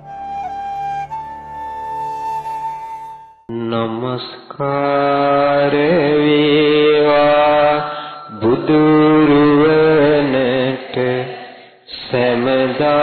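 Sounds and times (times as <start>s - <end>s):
monk chanting into a microphone: 3.5s - 13.0s.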